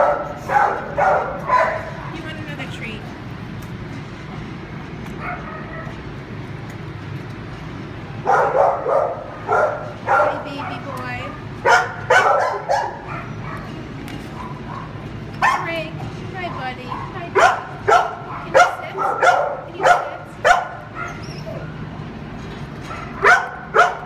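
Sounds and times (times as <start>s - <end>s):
dog barking and yipping: 0.0s - 2.1s, 5.2s - 6.0s, 8.2s - 15.7s, 16.9s - 21.8s, 22.8s - 24.0s
low background hum: 0.0s - 24.0s.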